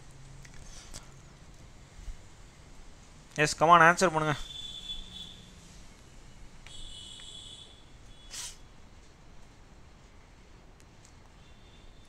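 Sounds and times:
low hiss: 0.0s - 12.0s
person sniffing: 8.3s - 8.6s.

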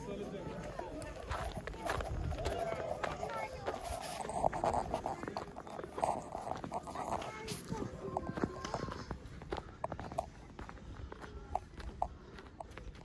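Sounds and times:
people and children talking: 0.0s - 13.0s
footsteps crunching in snow: 0.5s - 13.0s.

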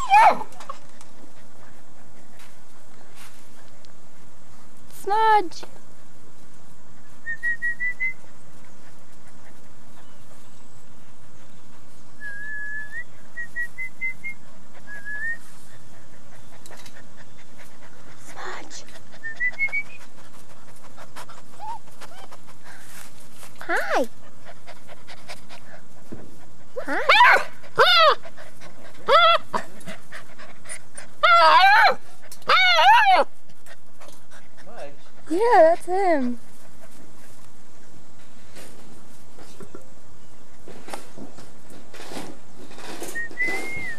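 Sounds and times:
puppies whining and yelping: 0.0s - 0.9s, 13.4s - 20.4s, 21.2s - 22.6s, 26.7s - 33.5s, 43.1s - 43.9s
high chirping whimpers: 21.5s - 22.4s.

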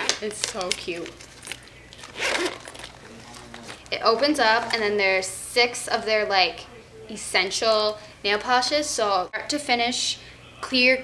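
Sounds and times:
zipper pulled open: 1.0s - 3.8s.

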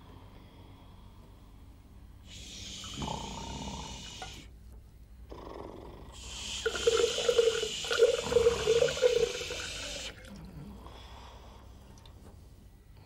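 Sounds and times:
water pouring into a glass: 6.6s - 10.5s.

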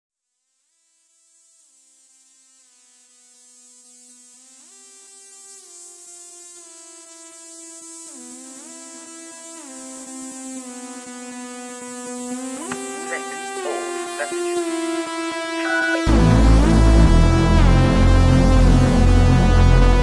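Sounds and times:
synthesizer gliding held notes: 15.5s - 20.0s.

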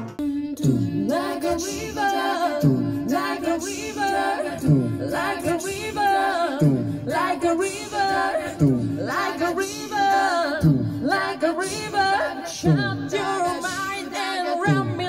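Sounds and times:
a cappella group singing: 0.0s - 15.0s.

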